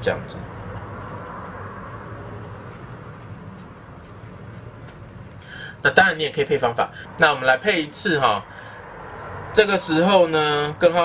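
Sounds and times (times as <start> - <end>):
marker pen scratching on paper: 0.0 - 5.4
steady low hum: 0.0 - 11.0.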